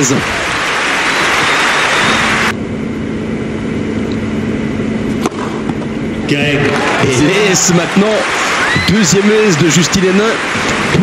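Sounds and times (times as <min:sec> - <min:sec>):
crowd applauding: 0:00.0 - 0:02.5, 0:06.5 - 0:11.0
low steady hum: 0:02.1 - 0:09.6
racket striking ball: 0:05.1 - 0:05.9.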